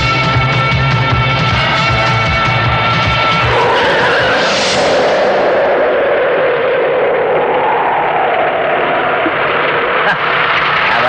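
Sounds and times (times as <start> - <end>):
vehicles driving fast: 0.8 - 7.4.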